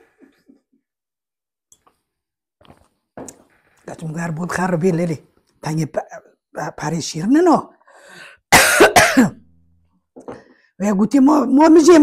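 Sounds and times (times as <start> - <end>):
woman coughing: 8.5 - 9.4.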